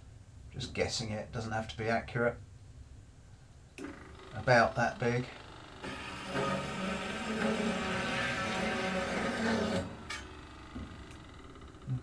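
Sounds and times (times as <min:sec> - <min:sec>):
chop saw cutting steel: 0:05.8 - 0:10.4.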